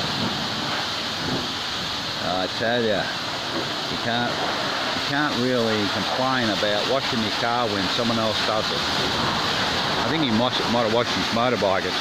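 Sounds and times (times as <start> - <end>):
pressure washer spraying water: 0.0 - 12.0.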